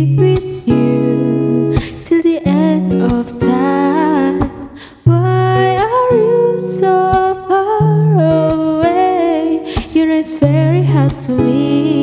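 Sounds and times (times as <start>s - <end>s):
acoustic guitar: 0.0s - 12.0s.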